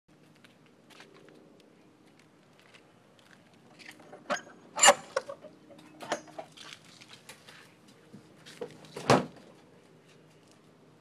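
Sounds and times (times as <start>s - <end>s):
gate clattering: 4.2s - 6.5s.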